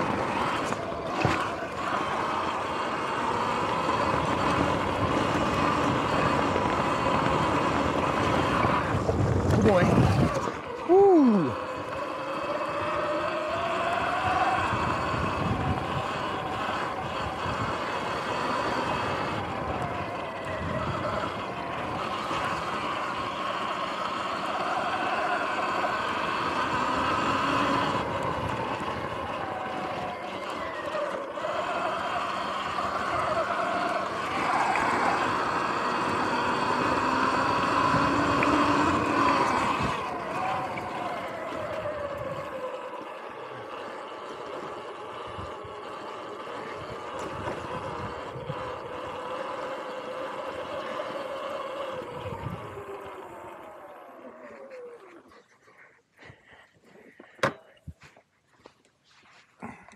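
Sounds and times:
electric motorbike motor whine: 0.0 - 55.5
tyre and ground noise: 0.0 - 59.9.

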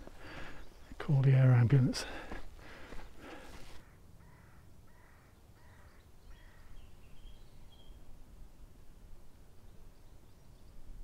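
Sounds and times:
man breathing hard: 0.0 - 0.7, 2.0 - 3.8
bird calling: 3.2 - 8.0.

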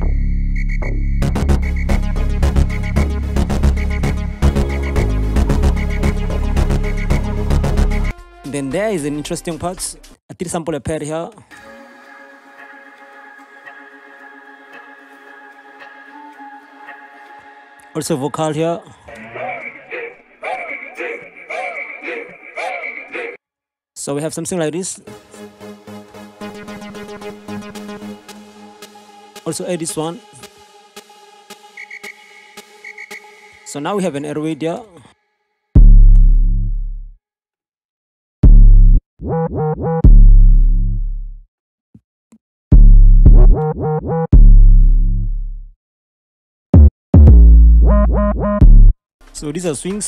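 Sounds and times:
deep bass notes: 0.0 - 8.1, 35.8 - 37.1, 38.4 - 41.4, 42.8 - 45.7, 46.8 - 49.0
chopped vocal phrases: 18.3 - 23.4.

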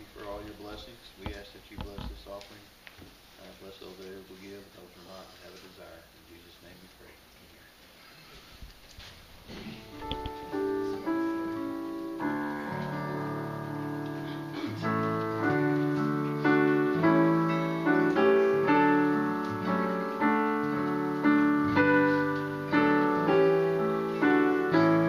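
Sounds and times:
digital piano chords: 9.6 - 25.0.

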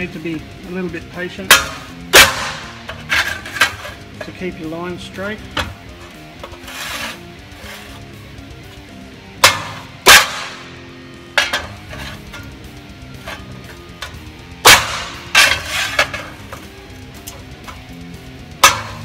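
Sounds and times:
hammer striking metal: 1.4 - 4.4, 9.4 - 12.6, 13.2 - 16.7, 18.6 - 19.0.

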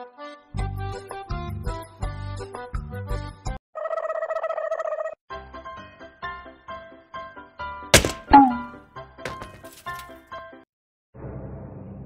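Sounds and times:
loud thuds: 8.0 - 10.0.

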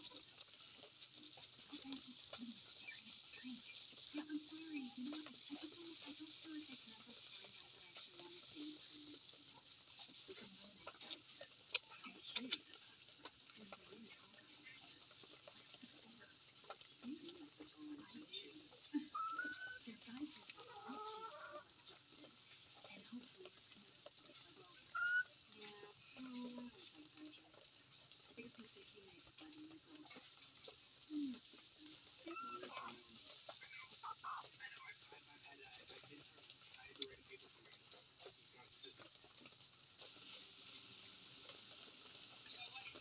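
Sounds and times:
rustling: 0.0 - 43.0
faint chicken calls: 18.9 - 19.9, 20.6 - 22.0, 24.8 - 25.4, 32.3 - 33.0.

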